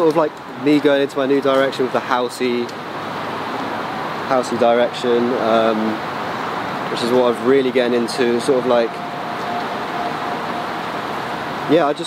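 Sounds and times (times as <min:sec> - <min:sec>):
road traffic hiss: 0:00.0 - 0:12.0.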